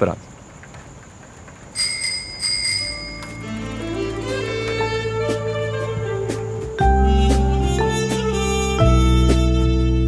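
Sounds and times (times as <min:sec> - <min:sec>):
bicycle bell ringing: 0:01.7 - 0:05.0.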